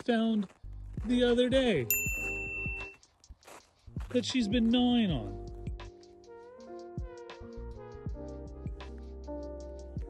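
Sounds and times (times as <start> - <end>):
high-pitched electronic ding: 1.9 - 2.9.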